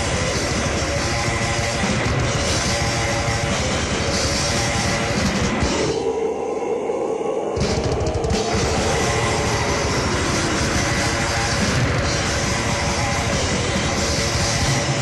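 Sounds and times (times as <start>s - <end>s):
death metal band playing: 0.0s - 6.7s, 7.4s - 15.0s.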